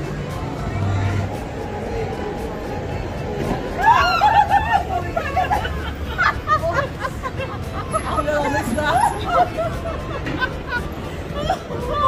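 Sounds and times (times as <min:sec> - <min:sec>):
babble of voices: 0:00.0 - 0:12.0
women crying out and laughing: 0:03.7 - 0:12.0.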